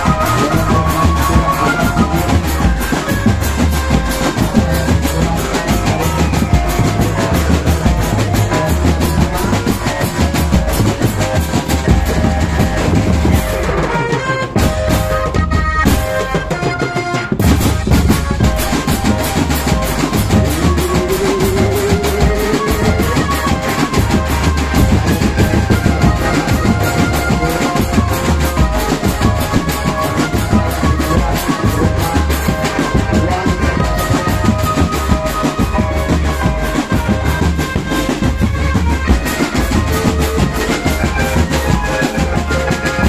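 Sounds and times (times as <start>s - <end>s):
drum band music: 0.0s - 43.0s.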